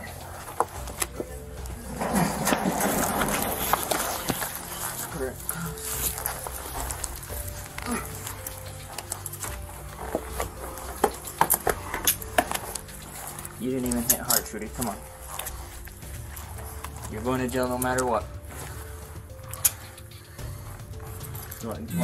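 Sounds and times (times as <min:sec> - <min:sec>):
rustling and knocks of bodies: 0:00.0 - 0:21.9
background music: 0:00.0 - 0:22.0.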